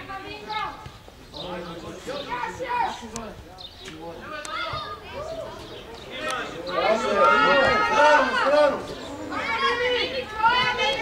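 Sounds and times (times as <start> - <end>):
young players shouting: 2.0 - 3.2, 4.2 - 11.0.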